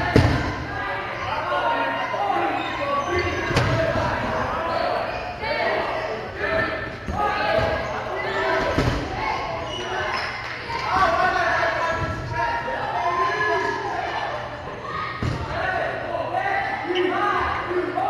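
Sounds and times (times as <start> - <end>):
balls bouncing on a gym floor: 0.0 - 0.6, 3.2 - 4.3, 15.2 - 15.6.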